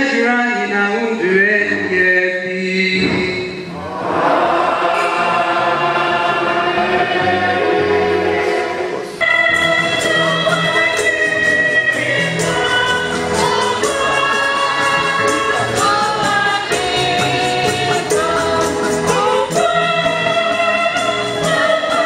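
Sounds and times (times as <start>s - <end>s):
women's choir singing a hymn: 3.7s - 22.0s.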